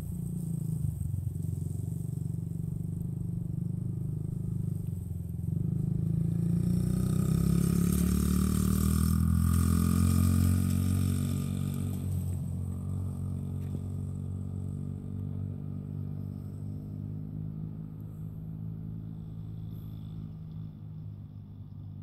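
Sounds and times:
dirt bike engine running: 0.0s - 22.0s.

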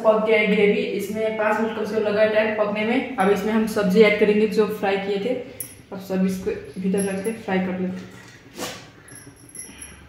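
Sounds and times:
utensil clink: 6.8s - 7.5s, 9.0s - 10.0s.

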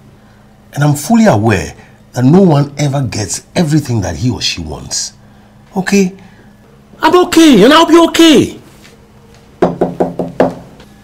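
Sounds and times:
quick knocks on a door: 9.6s - 10.7s.

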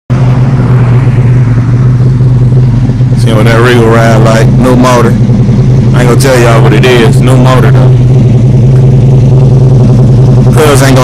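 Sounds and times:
car engine idling loudly: 0.1s - 11.0s.

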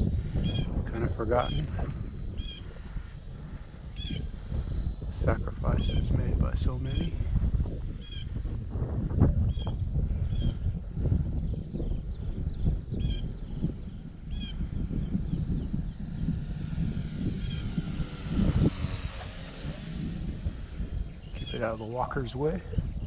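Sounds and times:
model airplane motor whine: 0.0s - 23.0s
wind rumbling on microphone: 0.0s - 23.0s.

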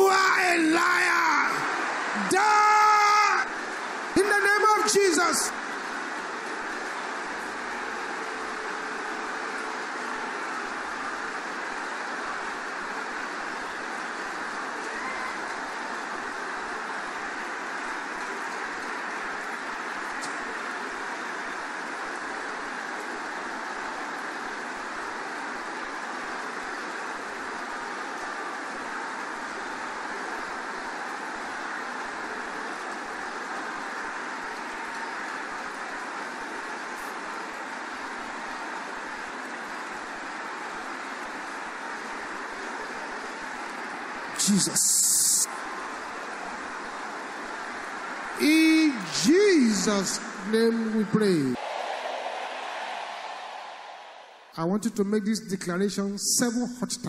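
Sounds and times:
congregation praying aloud: 0.0s - 5.6s, 48.3s - 54.7s.

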